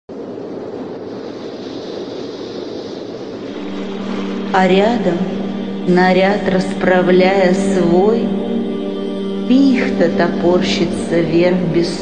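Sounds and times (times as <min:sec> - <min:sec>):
steady rushing noise: 0:00.1 - 0:12.0
low held note: 0:03.5 - 0:12.0.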